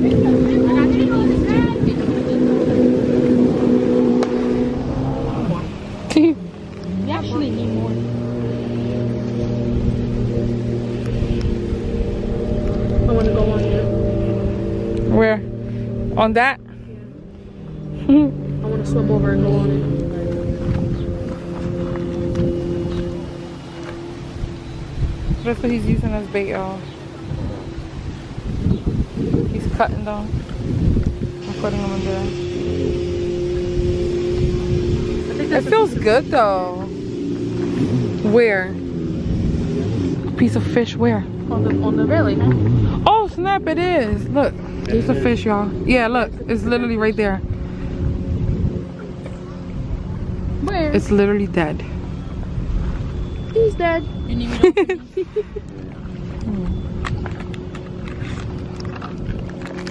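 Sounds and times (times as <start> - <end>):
jet ski engine drone: 0.0 - 59.9
wind buffeting microphone: 0.0 - 59.9.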